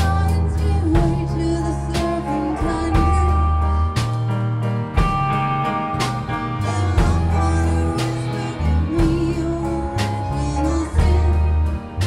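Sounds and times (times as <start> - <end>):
electric bass held notes: 0.0 - 12.0
drum kit hits: 2.0 - 10.3
person singing wavering notes: 6.5 - 12.0.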